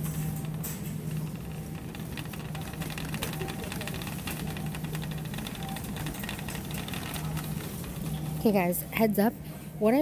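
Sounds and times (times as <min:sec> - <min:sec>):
shopping cart rattling on tiles: 0:00.0 - 0:08.6.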